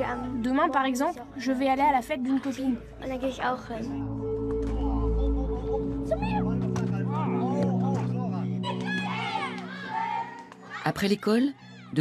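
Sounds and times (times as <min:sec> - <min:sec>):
background music low tones: 0:00.0 - 0:12.0
children calling out: 0:08.6 - 0:10.9.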